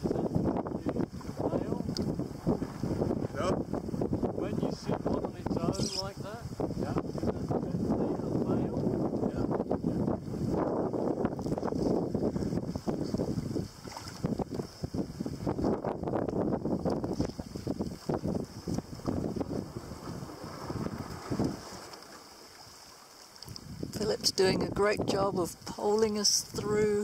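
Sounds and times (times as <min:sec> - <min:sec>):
wind gusting over microphone: 0:00.0 - 0:22.2, 0:23.5 - 0:27.0
water washing around a boat: 0:00.0 - 0:27.0.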